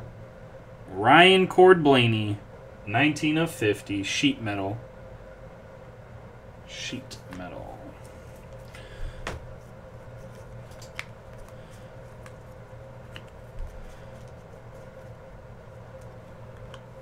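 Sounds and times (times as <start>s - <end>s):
steady low hum: 0.0s - 17.0s
card edges clicking and flicking: 10.2s - 14.4s.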